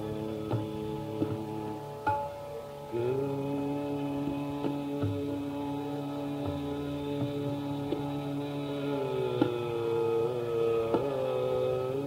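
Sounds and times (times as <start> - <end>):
long held sung note: 0.0 - 12.0
tabla strokes: 0.0 - 12.0
tanpura drone: 0.0 - 12.0.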